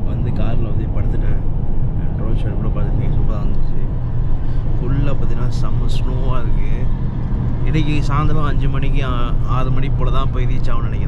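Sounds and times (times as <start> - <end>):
man talking: 0.0 - 3.9, 4.7 - 6.9, 7.6 - 11.0
car driving rumble inside cabin: 0.0 - 11.0.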